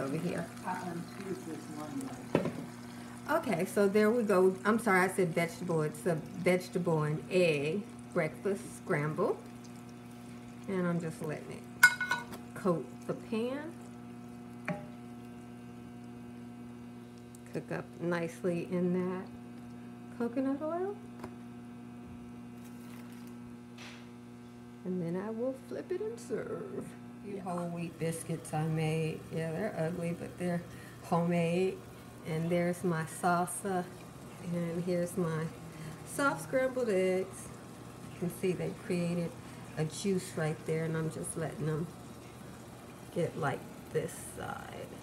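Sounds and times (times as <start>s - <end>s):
egg mixture sizzling in oil: 0.0s - 17.5s, 27.4s - 45.0s
low electrical hum: 0.0s - 45.0s.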